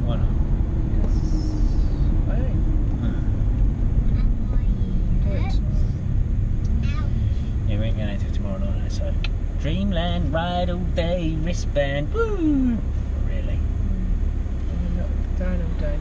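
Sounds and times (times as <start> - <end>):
car cabin road and engine rumble: 0.0 - 16.0.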